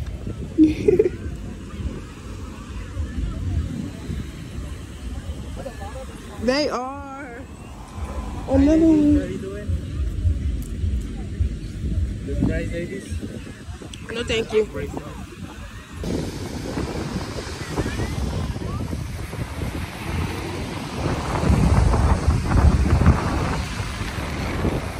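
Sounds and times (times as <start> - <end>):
people calling and talking: 0.0 - 24.9
wind rumble on microphone: 0.0 - 24.9.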